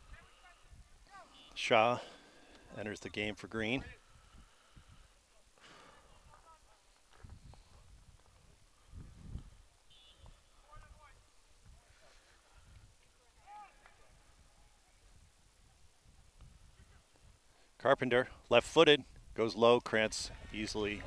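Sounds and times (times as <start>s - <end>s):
distant shouts of soccer players: 0.0s - 2.2s, 9.9s - 15.0s.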